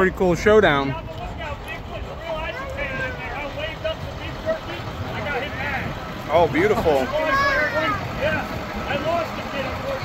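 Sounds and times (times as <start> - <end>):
large truck engines rumbling: 0.0 - 10.0
passengers chattering: 0.0 - 10.0.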